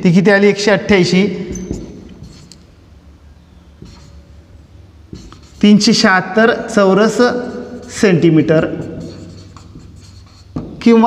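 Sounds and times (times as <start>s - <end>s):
marker pen writing on whiteboard: 1.3s - 2.7s, 3.6s - 11.0s.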